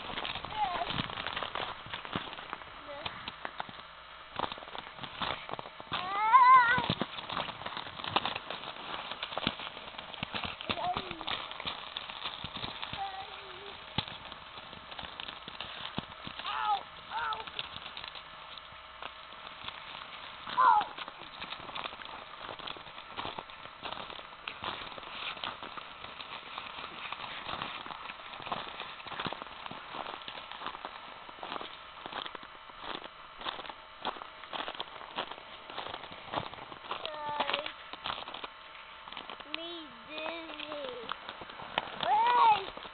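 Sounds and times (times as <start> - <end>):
crunching in snow: 0.0 - 42.9
child crying out: 6.0 - 6.9, 20.5 - 20.9
child squealing: 6.0 - 6.9.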